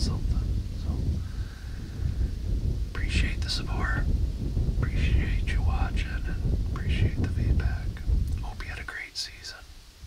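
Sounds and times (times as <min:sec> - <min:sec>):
man speaking quietly: 0:00.0 - 0:01.2, 0:02.9 - 0:04.1, 0:04.8 - 0:09.7
low rumble: 0:00.0 - 0:10.0.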